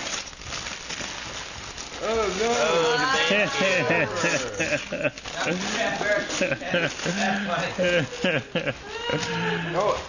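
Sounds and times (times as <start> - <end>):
wrapping paper rustling and crinkling: 0.0 - 10.0.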